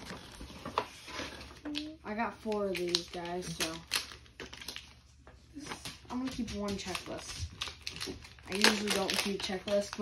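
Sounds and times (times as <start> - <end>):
paper rustling and crinkling: 0.0 - 10.0.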